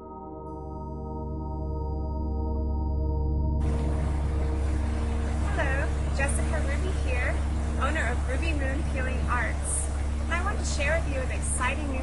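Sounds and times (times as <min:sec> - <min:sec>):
fountain water falling: 0:03.6 - 0:12.0
woman speaking: 0:05.5 - 0:12.0.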